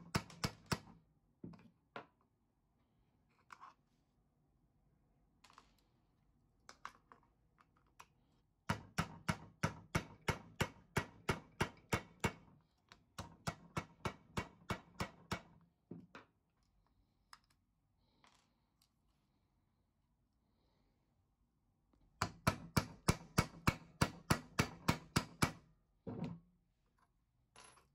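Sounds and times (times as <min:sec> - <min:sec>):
mallet tapping a nail: 0:08.7 - 0:12.4, 0:22.2 - 0:25.6.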